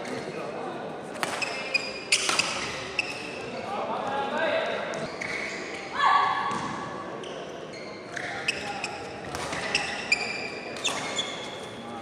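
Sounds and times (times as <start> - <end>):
racket hitting shuttlecock: 1.2 - 3.3
shoes squeaking on floor: 1.3 - 3.7, 4.9 - 12.0.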